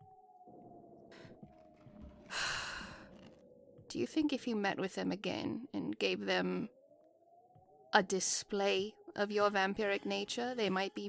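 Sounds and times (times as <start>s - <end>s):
person sighing: 2.3s - 3.2s.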